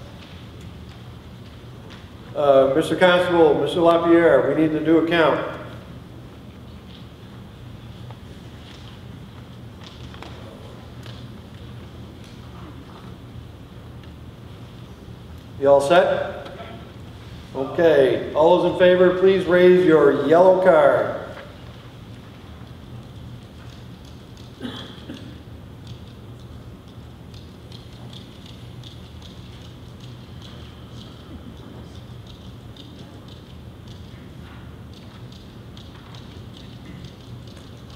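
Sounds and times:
faint clicks and rustles: 0.0s - 2.4s, 6.2s - 15.6s, 21.2s - 37.9s
steady low hum: 0.0s - 37.9s.

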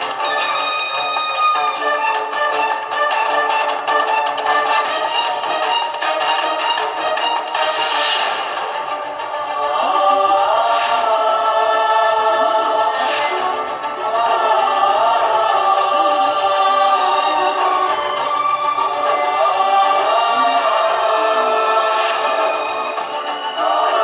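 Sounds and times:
shimmering accents: 0.0s - 2.8s, 12.2s - 24.0s
dramatic choir-like music: 0.0s - 24.0s.

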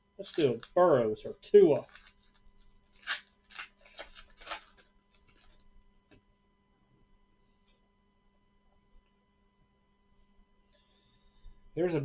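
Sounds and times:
foil wrapper crinkling: 0.2s - 5.7s.

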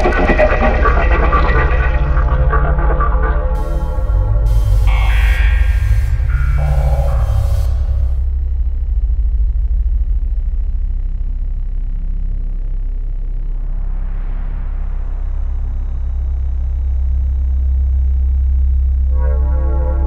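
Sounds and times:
deep rumbling drone: 0.0s - 20.0s
hiss: 3.6s - 8.2s.

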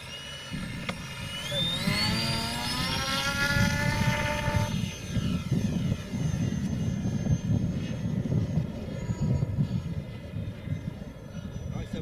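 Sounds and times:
propeller motor whine rising: 0.0s - 12.0s.

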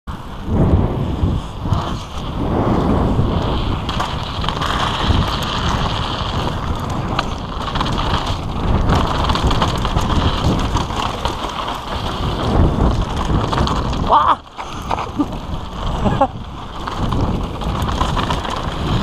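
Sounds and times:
bike rattling: 0.1s - 19.0s
wind buffeting microphone: 0.1s - 19.0s
tyres crunching over gravel: 3.2s - 19.0s.

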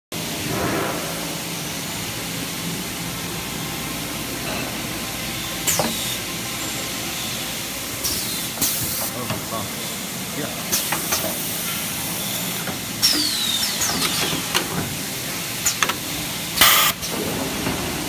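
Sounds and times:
packaging machine hiss and rattle: 5.6s - 7.4s, 8.0s - 10.0s, 10.7s - 17.9s
air hiss bursts: 16.6s - 17.0s.

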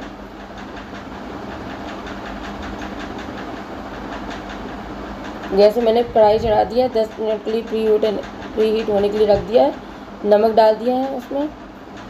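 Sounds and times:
fast faint clicking: 0.0s - 12.0s.

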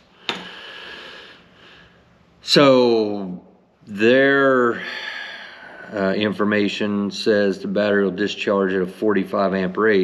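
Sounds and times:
man breathing out: 0.1s - 2.0s, 4.8s - 6.0s.

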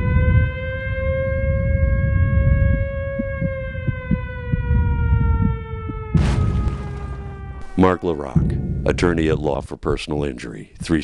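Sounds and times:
siren-like tone falling in pitch: 0.0s - 9.1s
low rumble: 0.1s - 9.8s.

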